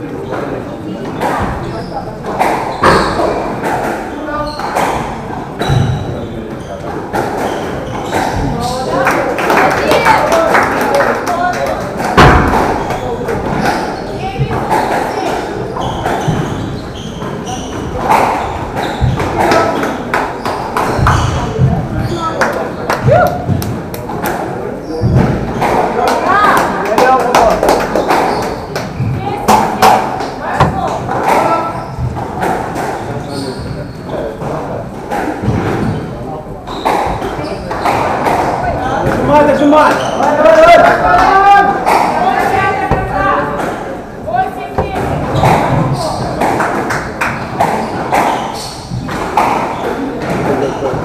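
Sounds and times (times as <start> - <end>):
people talking: 7.8 - 16.6, 20.9 - 31.9, 33.0 - 51.0
squash ball thuds: 11.9 - 22.0, 23.0 - 26.7, 28.0 - 33.2, 40.9 - 51.0
players' feet on court: 36.7 - 51.0.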